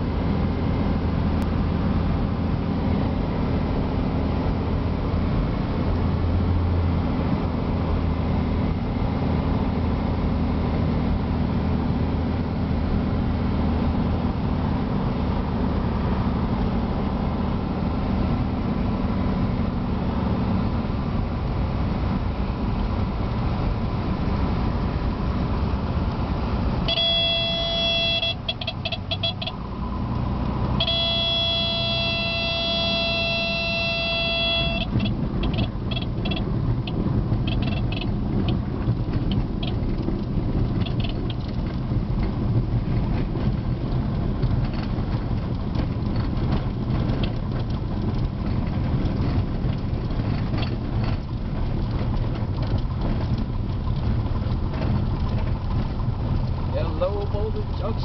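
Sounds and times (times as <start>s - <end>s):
stall warning horn: 26.9s - 29.6s, 30.8s - 35.1s.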